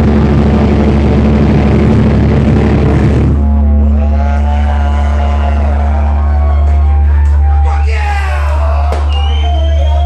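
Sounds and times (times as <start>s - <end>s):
bass guitar low drone: 0.0s - 10.0s
drums: 7.2s - 10.0s.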